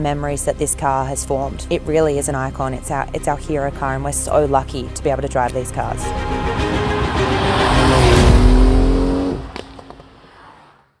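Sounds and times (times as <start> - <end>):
car engine driving past: 6.0 - 10.8.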